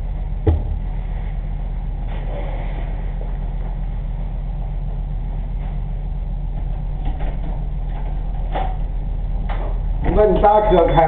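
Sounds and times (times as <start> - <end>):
low electrical hum and hiss: 0.0 - 11.0.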